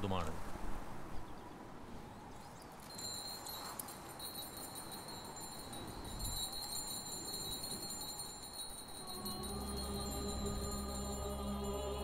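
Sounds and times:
small bells jingling: 0:02.8 - 0:12.0.

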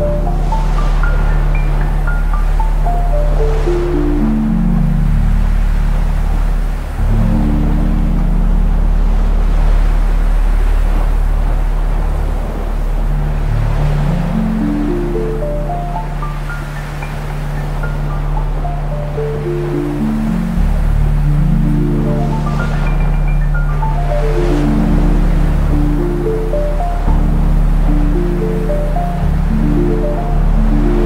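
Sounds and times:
ocean surf: 0:00.0 - 0:31.0
slow ambient music drone: 0:00.0 - 0:31.0
notes stepping in pitch: 0:14.1 - 0:31.0.

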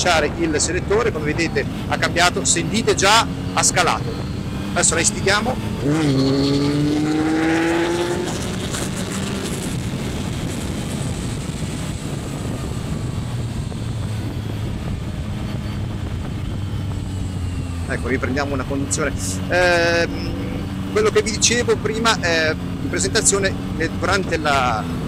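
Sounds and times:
wind rush: 0:00.0 - 0:21.0
motorcycle engine pulling hard: 0:00.0 - 0:25.0.

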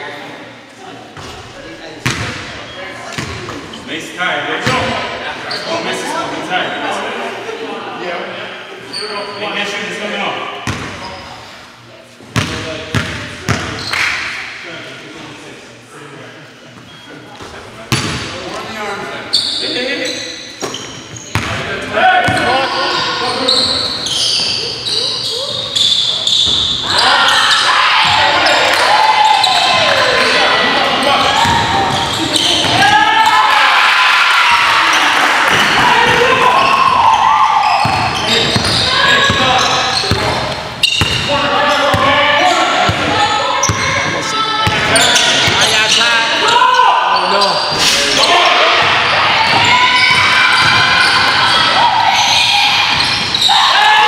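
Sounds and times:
players shouting: 0:21.8 - 0:54.0.

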